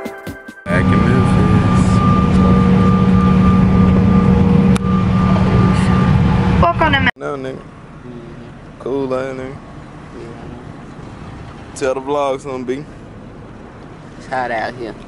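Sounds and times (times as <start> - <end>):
jet engines droning: 0.7 - 7.1
thin steady engine whine: 0.7 - 15.0.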